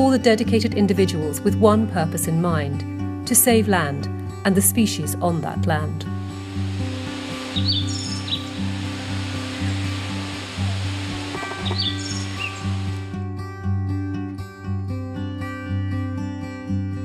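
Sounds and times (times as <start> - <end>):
soft acoustic music: 0.0 - 17.0
outdoor ambience hiss: 6.2 - 13.2
high bird chirps: 6.5 - 13.1.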